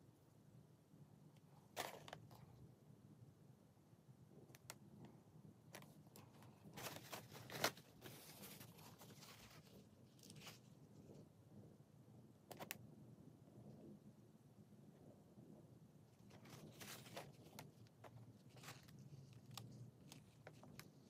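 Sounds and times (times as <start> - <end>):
soft tissue rustles: 5.7 - 11.3, 16.1 - 21.0.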